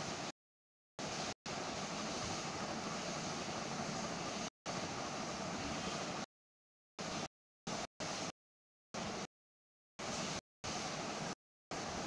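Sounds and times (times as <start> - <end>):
steady background hiss: 1.0 - 6.2.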